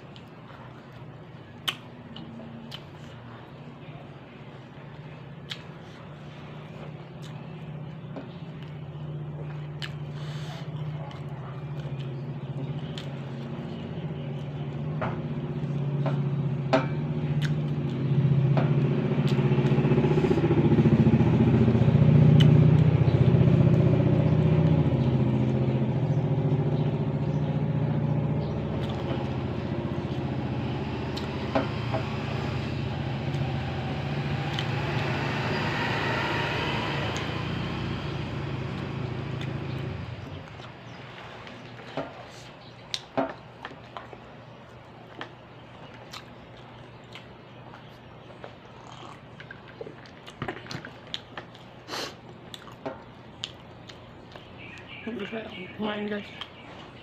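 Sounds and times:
vehicle engine humming: 0.0 - 57.0.

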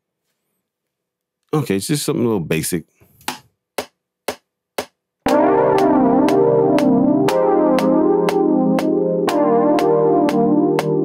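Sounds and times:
metronome clicks: 4.8 - 11.0
sustained keyboard chord: 5.2 - 11.0.

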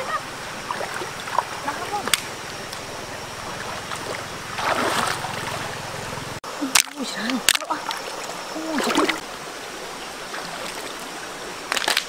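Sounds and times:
stream flowing over rocks: 0.0 - 12.0
sharp splash: 3.6 - 5.8, 6.8 - 9.2.

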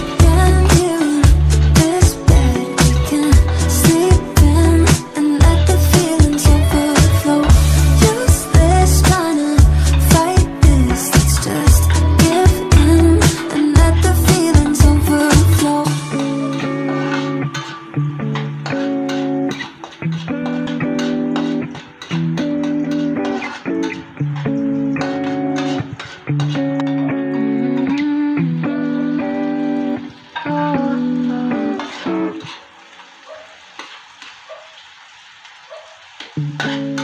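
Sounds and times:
food frying in a wok: 0.0 - 27.6, 28.9 - 37.0
plucked guitar and bass music: 0.0 - 32.6, 36.4 - 37.0
spatula stirring in a wok: 18.6 - 26.7.

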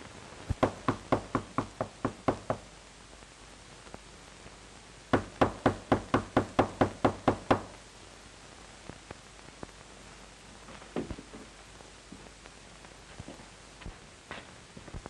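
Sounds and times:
knocking on a door: 0.6 - 2.6, 5.2 - 7.7.

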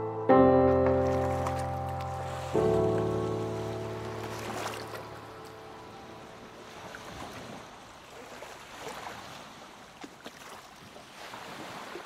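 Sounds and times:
piano chord ringing: 0.0 - 6.7
sea and wind: 0.0 - 12.0.

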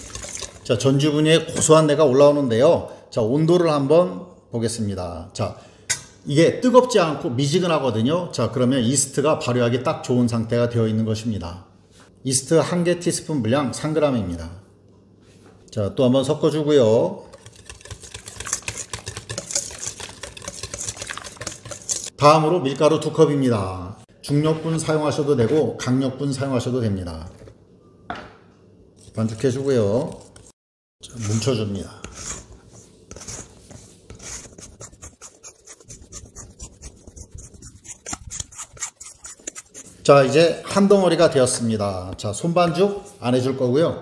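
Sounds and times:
whisk beating batter in bowl: 0.0 - 0.8, 17.2 - 22.2, 31.2 - 40.2
soft rubbing of dough: 29.2 - 40.5.

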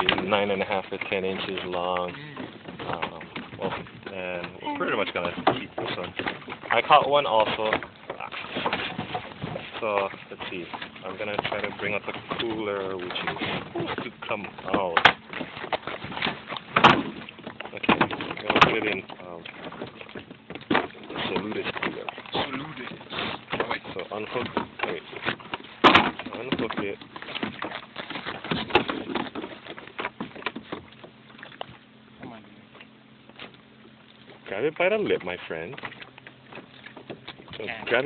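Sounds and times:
gear knocking and scraping: 0.0 - 31.2.

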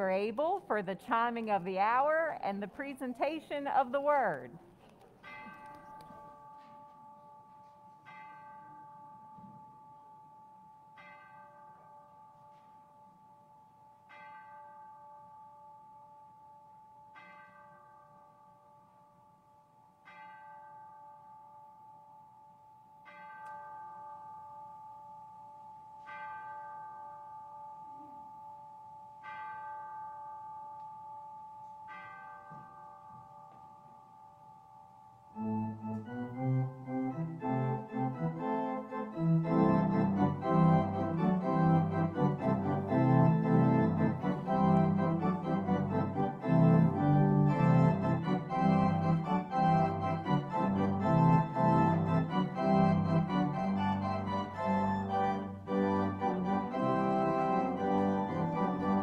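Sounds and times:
bell chiming: 5.2 - 36.5.

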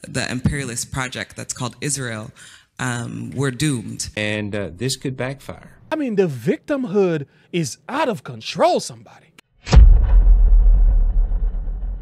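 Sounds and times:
deep cinematic boom rumble: 9.7 - 12.0.

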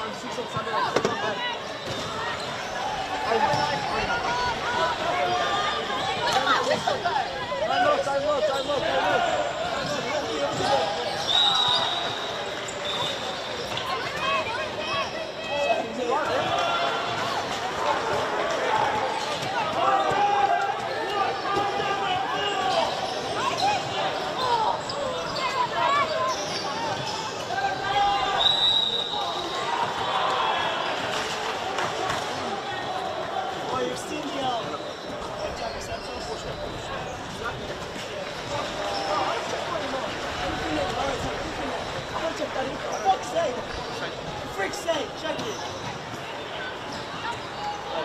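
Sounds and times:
players shouting: 0.0 - 36.2.

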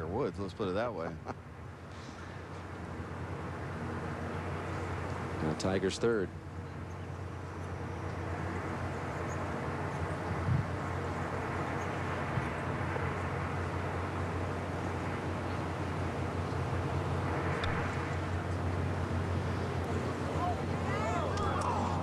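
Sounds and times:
low continuous hum: 0.0 - 22.0.

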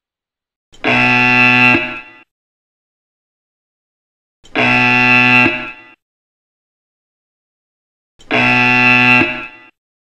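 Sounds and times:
loud electronic tone: 0.8 - 2.2, 4.6 - 6.0, 8.3 - 9.8.

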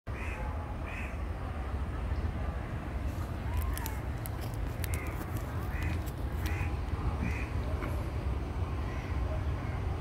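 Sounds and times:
steady low rumble: 0.4 - 10.0.

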